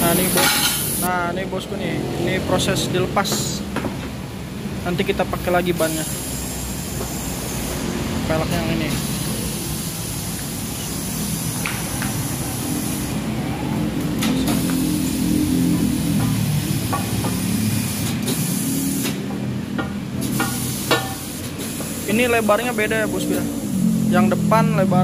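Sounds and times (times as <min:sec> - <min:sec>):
steady hiss: 0:20.2 - 0:24.3.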